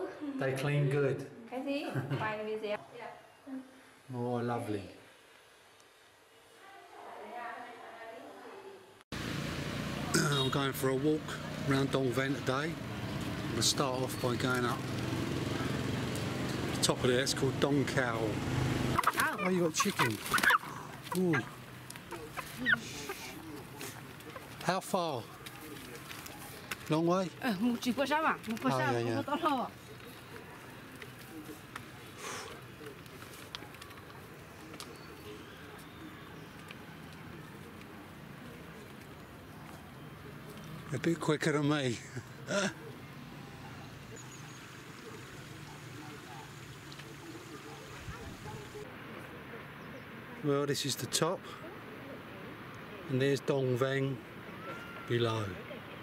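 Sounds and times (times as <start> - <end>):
faint indistinct voices: 9.9 - 56.0.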